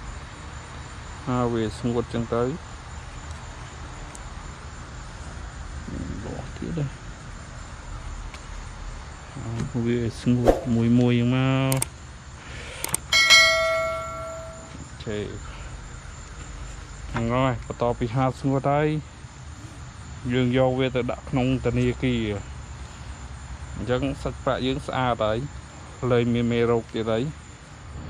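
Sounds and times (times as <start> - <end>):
crickets chirring: 0.0 - 28.0
metallic bell ring: 13.1 - 14.8.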